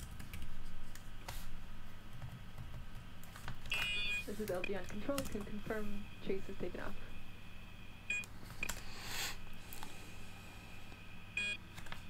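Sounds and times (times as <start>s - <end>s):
short electronic beeps: 3.7s - 4.8s.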